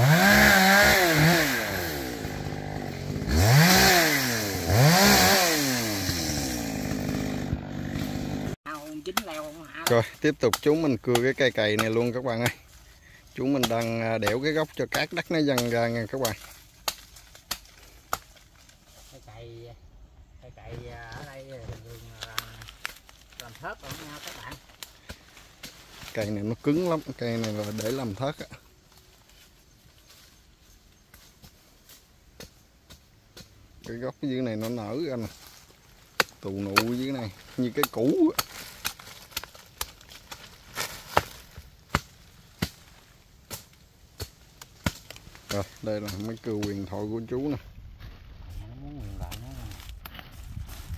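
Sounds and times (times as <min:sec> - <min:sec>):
hatchet chopping tree trunk: 0:09.1 - 0:12.0, 0:13.6 - 0:18.4, 0:36.0 - 0:37.0, 0:37.8 - 0:46.9
man talking: 0:09.9 - 0:12.6, 0:13.4 - 0:16.4, 0:26.1 - 0:28.6, 0:33.9 - 0:35.3, 0:36.4 - 0:38.4, 0:45.5 - 0:47.7, 0:48.5 - 0:49.9
blade chipping hard wood: 0:36.1 - 0:46.8.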